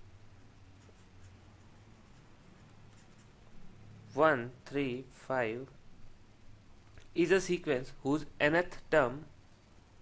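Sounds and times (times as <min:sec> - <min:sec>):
low steady hum: 0:00.0 - 0:10.0
stylus scratching on pen tablet: 0:00.7 - 0:03.4.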